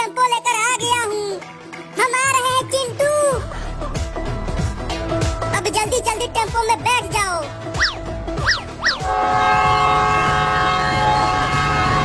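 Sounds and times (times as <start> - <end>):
rising and falling whistle glides: 7.8 - 9.1
train horn chord: 9.0 - 12.0.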